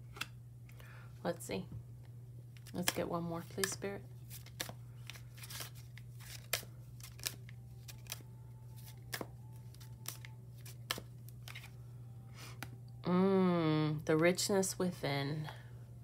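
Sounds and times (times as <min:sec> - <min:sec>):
steady low hum: 0:00.0 - 0:16.0
cards being shuffled: 0:02.5 - 0:11.8.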